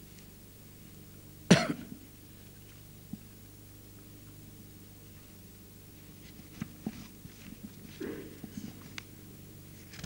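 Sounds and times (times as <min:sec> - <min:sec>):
man coughing: 0:01.5 - 0:02.0, 0:08.0 - 0:08.4.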